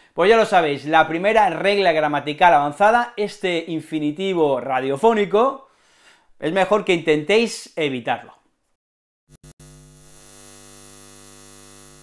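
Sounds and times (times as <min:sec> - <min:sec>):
neon sign electrical hum: 0:09.4 - 0:12.0.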